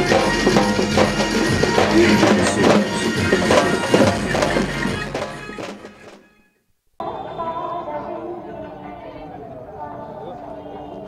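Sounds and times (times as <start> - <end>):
barrel drums beaten in fast rhythm: 0.0 - 6.2.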